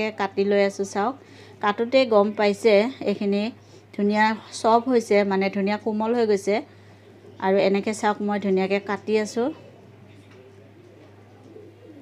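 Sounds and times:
steady low hum: 0.0 - 12.0
bird cooing: 6.7 - 7.9, 9.2 - 12.0.

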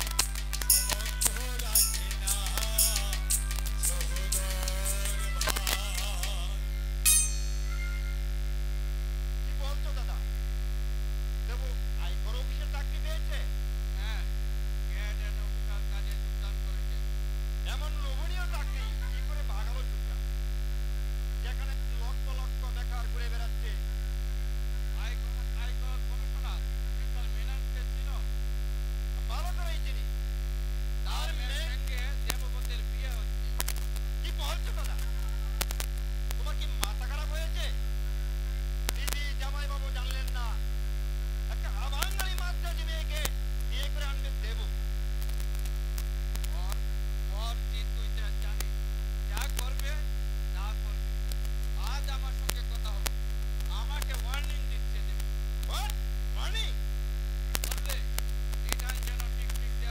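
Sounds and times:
faint speech: 0.0 - 6.9
sharp clicks: 0.0 - 7.8, 33.6 - 34.0
electrical mains hum: 0.0 - 59.9.

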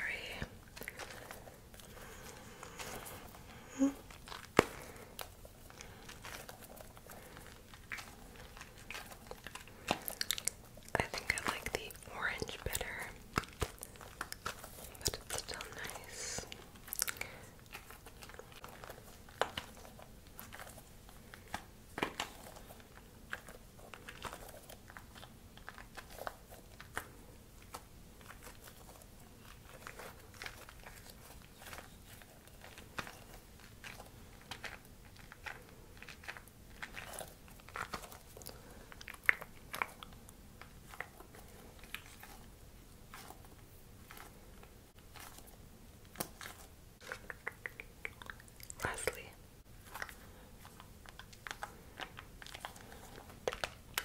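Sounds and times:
chewing and mouth clicks: 0.2 - 54.0.

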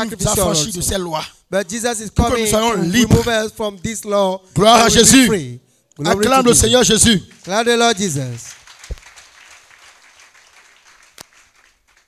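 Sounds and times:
crowd applauding: 7.3 - 12.0.

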